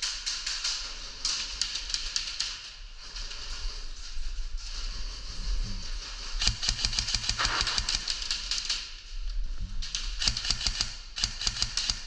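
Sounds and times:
airsoft guns firing in bursts: 6.4s - 8.9s, 10.0s - 12.0s.

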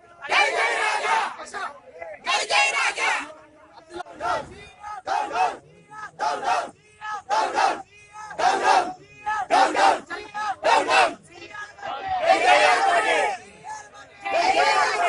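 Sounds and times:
crowd shouting slogans: 0.0s - 15.0s.

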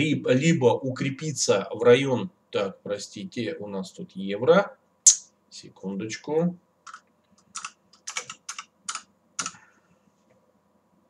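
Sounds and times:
typing on computer keyboard: 6.9s - 9.6s.

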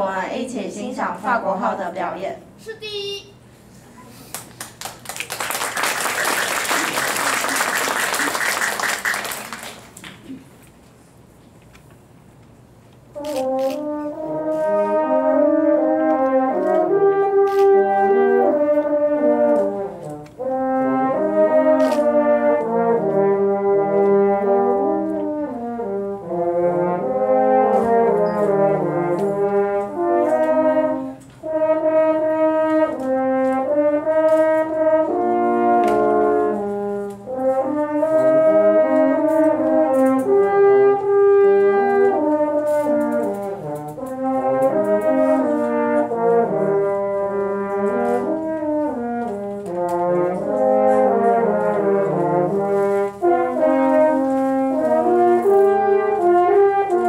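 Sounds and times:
french horns playing in harmony: 13.2s - 57.0s.

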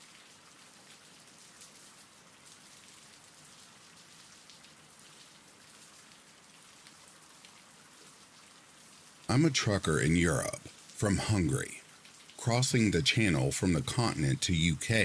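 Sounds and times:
rain pattering: 0.0s - 15.0s.

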